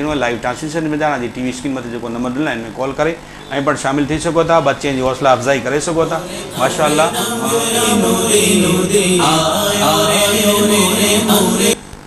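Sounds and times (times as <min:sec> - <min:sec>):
person chanting religious recitation: 0:04.4 - 0:11.8.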